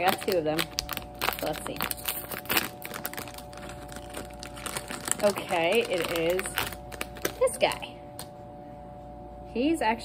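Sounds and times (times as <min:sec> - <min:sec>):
foil wrapper tearing and crinkling: 0:00.0 - 0:08.3.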